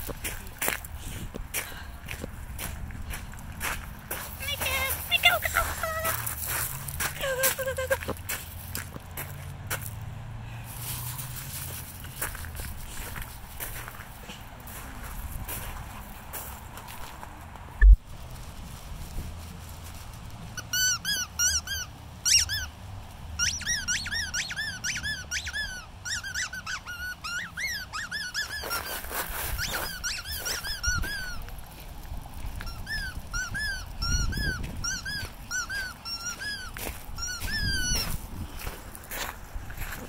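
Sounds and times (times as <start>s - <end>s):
squeaky dog toy squeaking: 20.6s - 22.7s, 23.4s - 31.5s, 32.6s - 38.1s.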